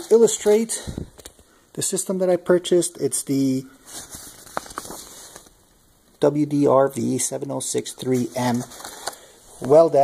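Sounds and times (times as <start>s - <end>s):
paper rustling: 3.8s - 5.6s, 8.0s - 10.0s.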